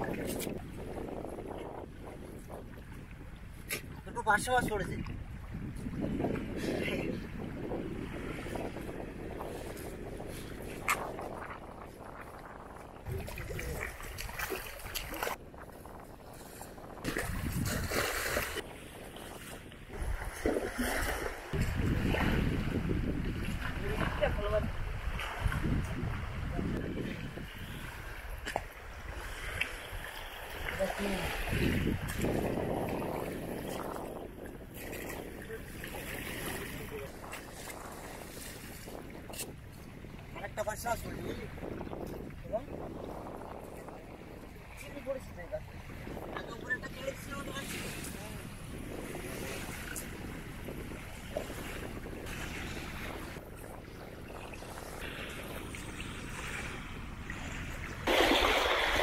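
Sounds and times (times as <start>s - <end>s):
shallow river water washing: 0.0s - 59.0s
wind on microphone: 0.0s - 59.0s
water splashing around legs: 13.0s - 15.4s
wet net hauled through water: 16.3s - 22.7s, 51.0s - 59.0s.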